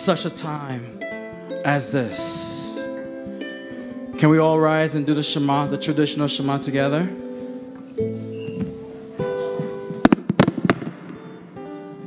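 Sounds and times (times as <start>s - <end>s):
acoustic guitar notes: 0.0s - 12.0s.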